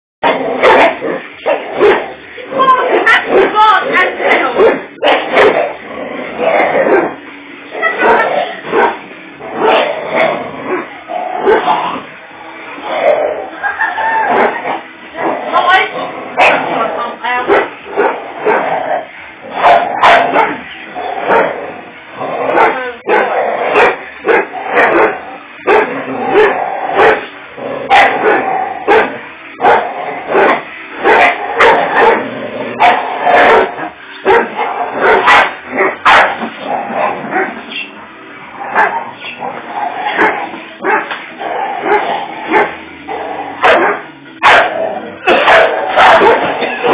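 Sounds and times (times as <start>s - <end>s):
dogs barking and yipping: 0.2s - 5.8s, 6.4s - 12.1s, 12.8s - 46.9s.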